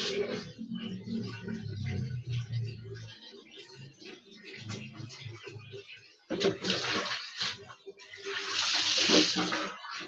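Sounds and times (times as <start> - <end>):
water splashing on concrete: 6.4 - 10.0.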